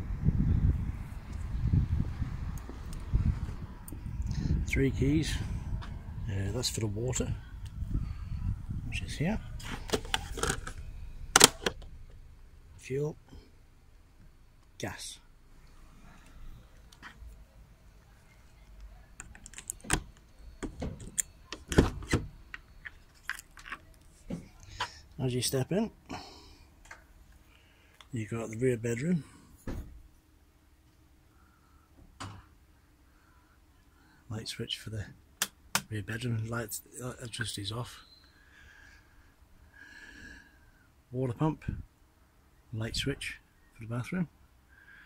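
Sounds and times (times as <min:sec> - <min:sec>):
wind buffeting microphone: 0:00.0 - 0:11.4
lock clicks: 0:11.4 - 0:11.9, 0:19.2 - 0:23.8.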